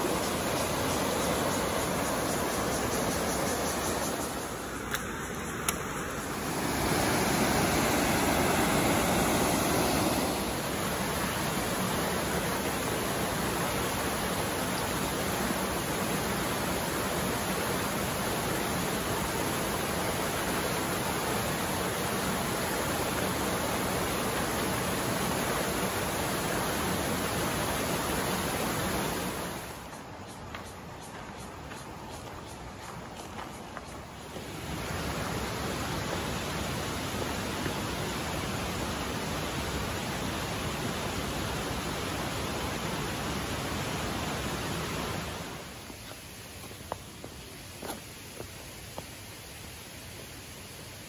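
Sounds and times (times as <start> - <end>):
stream rushing over stones: 0.0 - 51.0.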